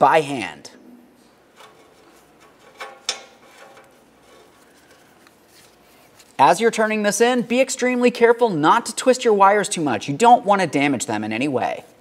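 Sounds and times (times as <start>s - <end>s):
faint handling and rubbing: 1.2s - 6.4s.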